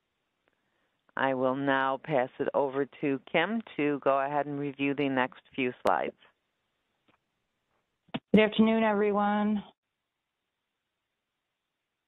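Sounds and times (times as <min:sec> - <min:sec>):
person speaking: 0:01.2 - 0:06.1.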